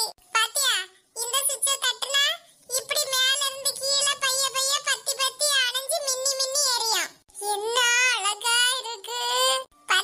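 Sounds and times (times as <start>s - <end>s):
high-pitched cartoon character voice: 0.0s - 10.0s.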